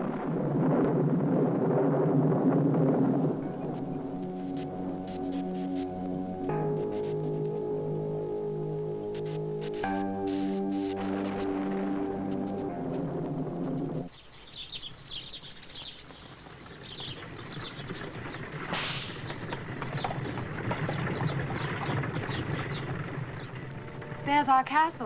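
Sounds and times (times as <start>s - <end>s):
birds chirping: 2.9s - 25.0s
soundtrack music sustained chord: 3.4s - 14.1s
horse-drawn carriage rumbling: 15.2s - 25.0s.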